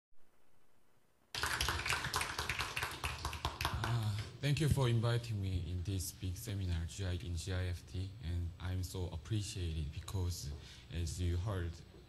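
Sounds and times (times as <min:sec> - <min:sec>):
small audience clapping: 0:01.3 - 0:04.4.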